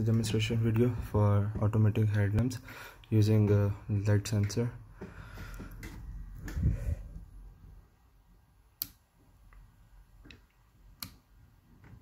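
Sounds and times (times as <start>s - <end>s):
switch clicking: 8.8s - 9.0s.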